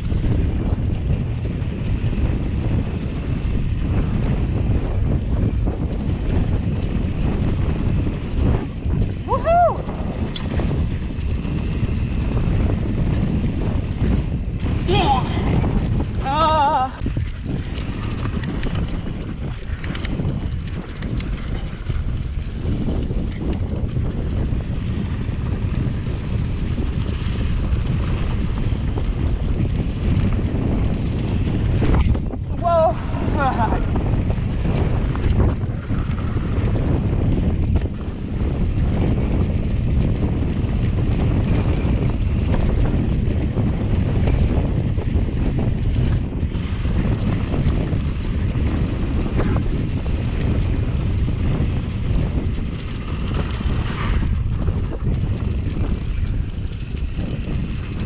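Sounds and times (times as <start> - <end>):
bike tyres rolling on dirt: 0.0 - 58.0
wind buffeting microphone: 0.0 - 58.0
person shouting and whooping: 9.3 - 9.9, 32.6 - 33.8.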